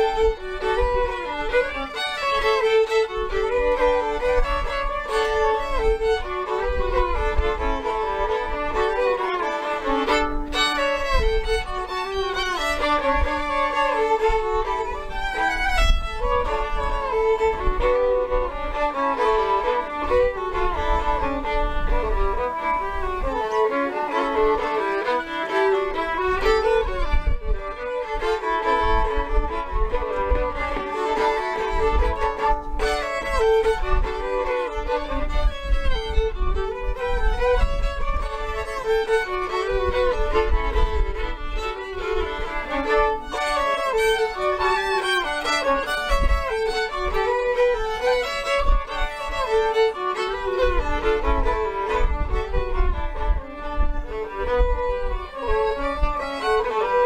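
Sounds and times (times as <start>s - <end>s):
two fiddles playing a melody: 0.0s - 57.0s.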